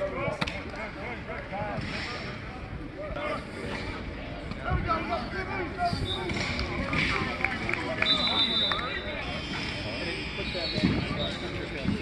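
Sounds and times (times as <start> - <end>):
players chattering and calling: 0.0 - 12.0.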